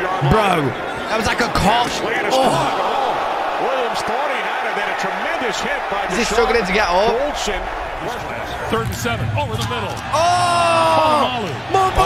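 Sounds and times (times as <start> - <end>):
man commentating: 0.0 - 12.0.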